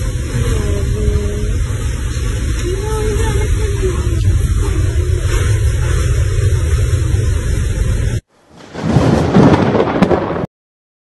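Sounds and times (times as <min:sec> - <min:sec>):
heavy low rumble: 0:00.0 - 0:10.4
roaring wind and rain: 0:00.0 - 0:10.5.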